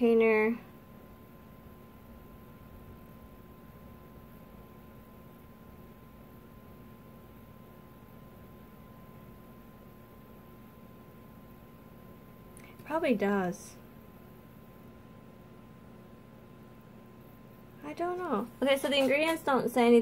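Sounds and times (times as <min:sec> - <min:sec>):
space heater hum: 0:00.0 - 0:20.0.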